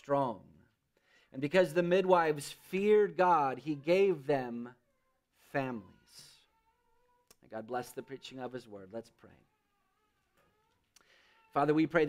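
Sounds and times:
man speaking: 1.3 - 4.8, 5.5 - 6.5, 7.4 - 9.5, 11.5 - 12.0.

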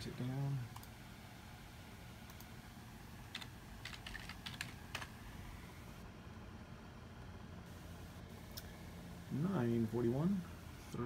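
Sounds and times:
computer keyboard keys clicking: 3.3 - 5.1.

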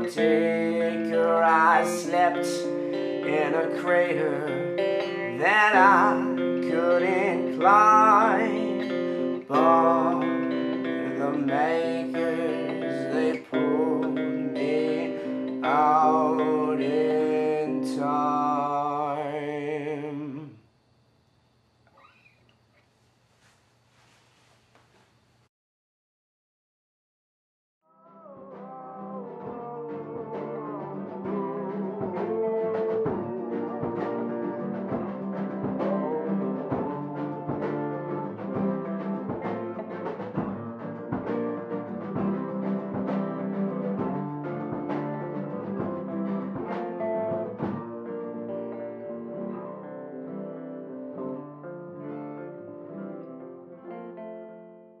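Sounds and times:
music with steady beat: 0.0 - 15.8, 29.4 - 49.0.

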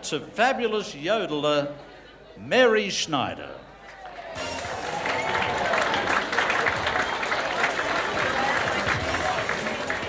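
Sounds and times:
audience applauding: 4.0 - 10.0.

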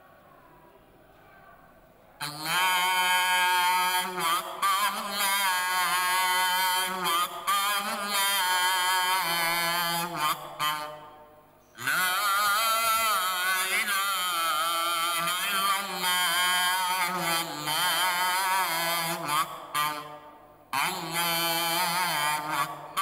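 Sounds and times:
man chanting a recitation: 2.2 - 23.0.

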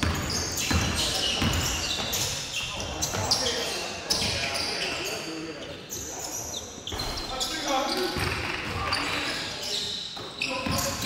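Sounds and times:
basketball bouncing on court: 0.0 - 3.4, 8.0 - 9.1
players' voices: 0.0 - 11.0.

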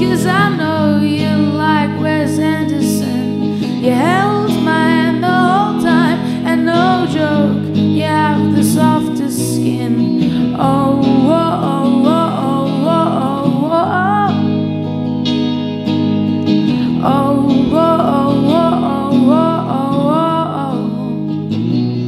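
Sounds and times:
woman singing: 0.0 - 14.8, 16.7 - 21.5
electric guitar strummed chords: 0.0 - 22.0.

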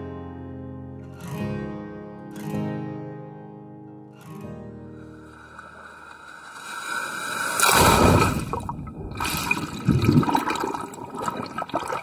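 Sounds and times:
ocean wave breaking: 5.2 - 11.0.

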